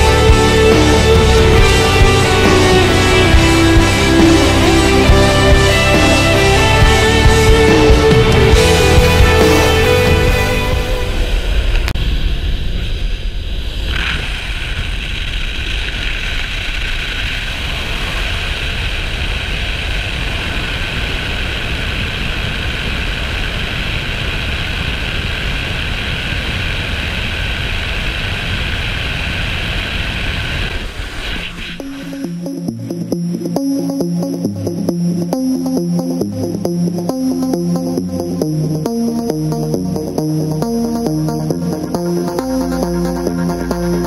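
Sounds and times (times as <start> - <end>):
small plane engine and propeller: 0.0 - 44.0.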